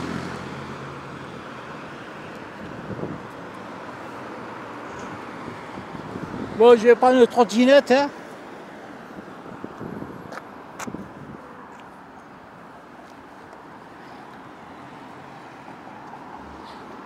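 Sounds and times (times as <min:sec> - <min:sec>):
distant road traffic: 0:00.0 - 0:17.0.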